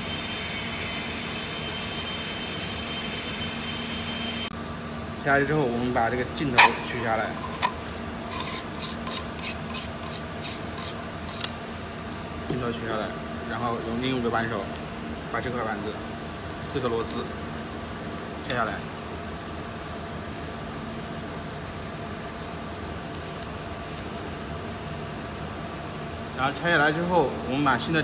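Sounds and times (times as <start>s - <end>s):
mechanical hum and hiss: 0.0s - 28.0s
screw threads rasping: 6.6s - 11.6s.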